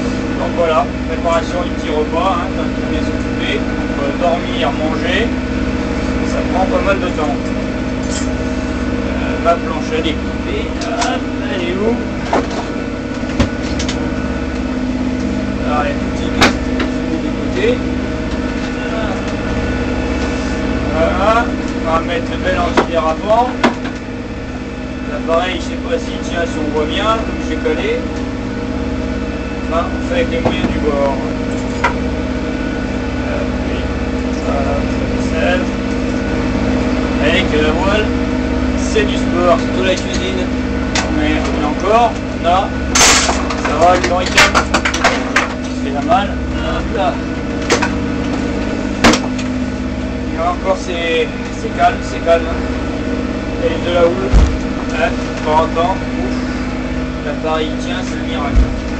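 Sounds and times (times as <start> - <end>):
boat diesel engine running: 0.0 - 58.9.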